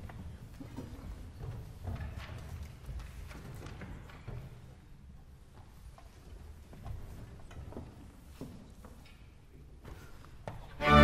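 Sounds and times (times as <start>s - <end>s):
knocks and shuffles on wooden stage: 0.0s - 11.0s.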